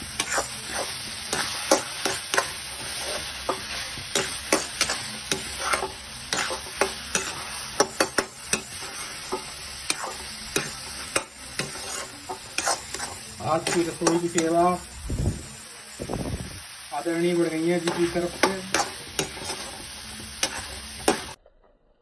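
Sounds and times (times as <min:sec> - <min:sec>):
spatula scraping a steel pan: 0:00.0 - 0:14.6, 0:17.7 - 0:21.4
steady sizzle: 0:00.0 - 0:21.4.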